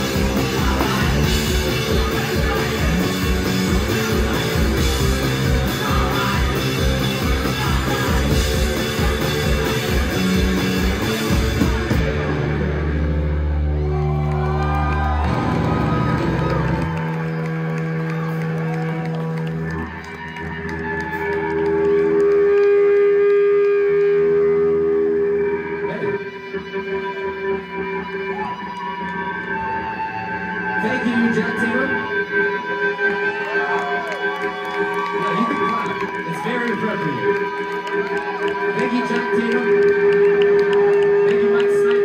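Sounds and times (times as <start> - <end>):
bass guitar: 0.0 - 42.0
drums: 0.0 - 42.0
electric guitar: 0.0 - 42.0.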